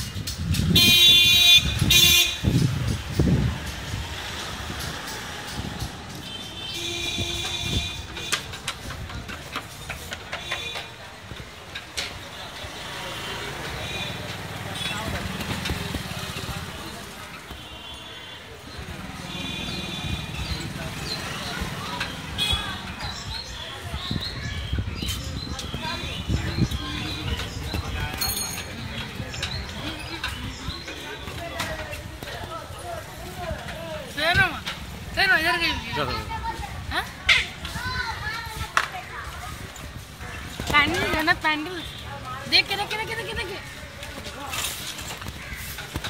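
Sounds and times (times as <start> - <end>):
street traffic noise: 0.0 - 46.0
voices of passers-by: 0.0 - 46.0
vehicle horn honking: 0.7 - 2.6.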